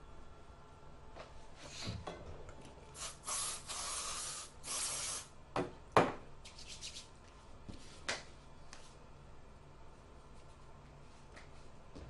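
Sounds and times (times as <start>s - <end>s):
bursts of hissing: 3.0s - 5.3s.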